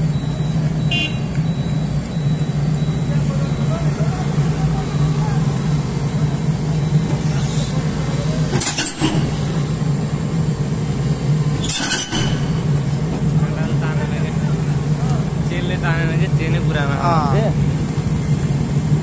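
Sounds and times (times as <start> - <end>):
excavator diesel engine running: 0.0 - 19.0
metallic clank: 8.5 - 9.6, 11.6 - 13.0.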